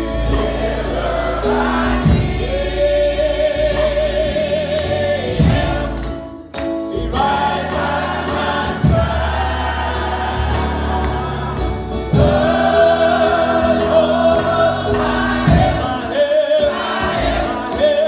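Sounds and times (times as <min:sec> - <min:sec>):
sustained bass notes: 0:00.0 - 0:06.3, 0:07.0 - 0:18.0
gospel choir singing: 0:00.0 - 0:18.0
steady ticking beat: 0:00.3 - 0:18.0
man singing into a microphone: 0:15.9 - 0:18.0.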